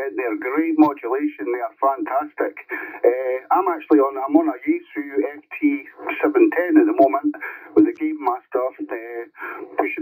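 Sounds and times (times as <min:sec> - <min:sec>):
person talking over radio speaker: 0:00.0 - 0:10.0.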